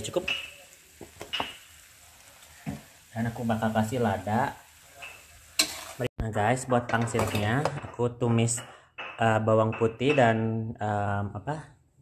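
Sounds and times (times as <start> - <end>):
utensil clinking on metal wok: 4.9 - 6.0.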